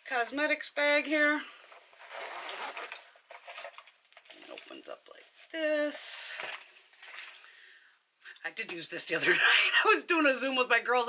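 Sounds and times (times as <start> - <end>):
bag crinkling and rubbing: 1.7 - 4.9, 6.2 - 7.4
zipper being pulled open: 2.0 - 3.2.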